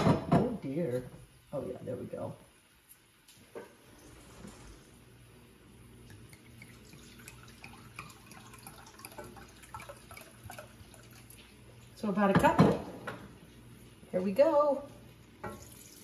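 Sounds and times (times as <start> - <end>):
liquid trickling into cup: 6.0 - 12.0.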